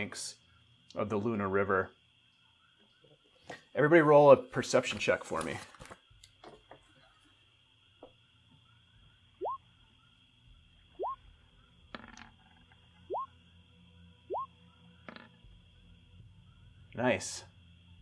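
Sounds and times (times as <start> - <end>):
faint high drone: 7.0 - 18.0
rising bloop notification tones: 9.4 - 9.6, 11.0 - 11.2, 13.1 - 13.3, 14.3 - 14.5.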